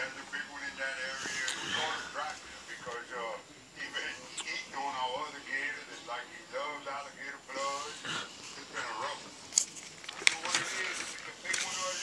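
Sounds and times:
paper rustling: 9.5s - 12.0s
sharp paper crinkles: 9.6s - 12.0s.

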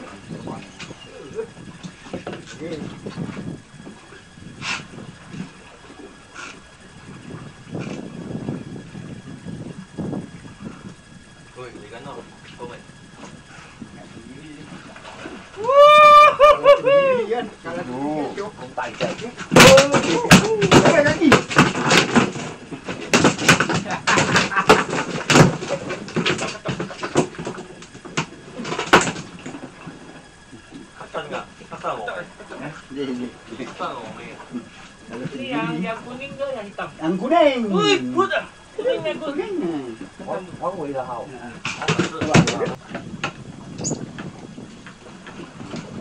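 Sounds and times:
people talking: 0.0s - 1.6s, 2.5s - 3.0s, 11.6s - 12.9s, 13.9s - 14.8s, 15.6s - 21.5s, 30.6s - 42.8s
loud high wavering call: 15.6s - 17.2s.

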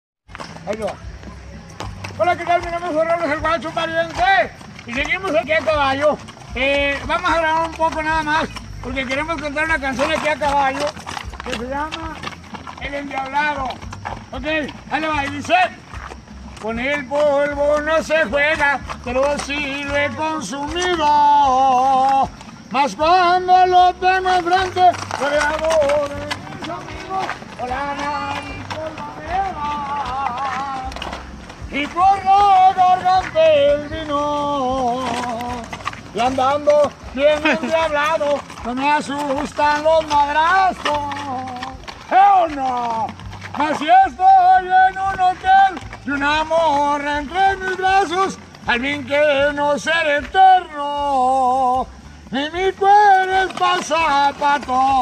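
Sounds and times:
horse hooves on dirt: 0.2s - 55.0s
man singing unaccompanied: 16.5s - 55.0s.

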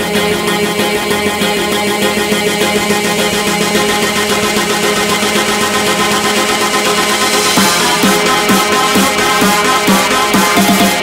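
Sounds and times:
buzzing synth chord with fast pulse: 0.0s - 11.0s.

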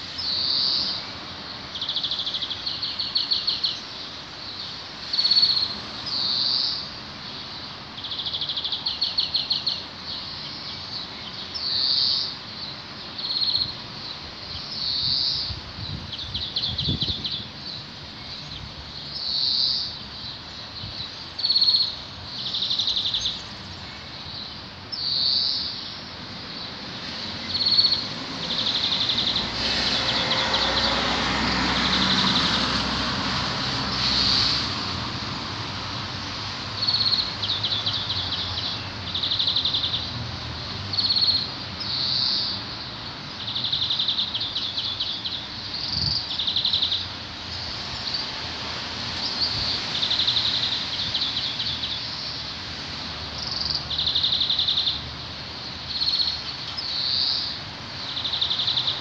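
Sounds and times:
small birds singing: 0.0s - 33.0s, 36.0s - 59.0s.

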